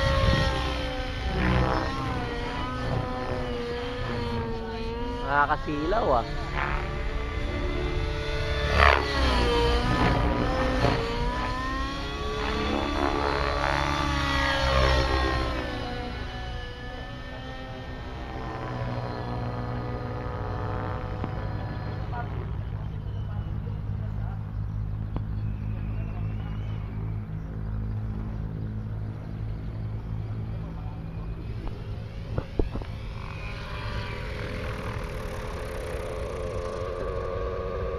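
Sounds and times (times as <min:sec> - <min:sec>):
model helicopter flying: 0:00.0 - 0:37.9.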